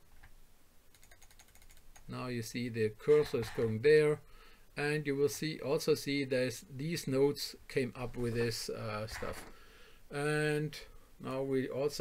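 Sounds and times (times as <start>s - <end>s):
computer mouse clicks: 0.9s - 2.1s.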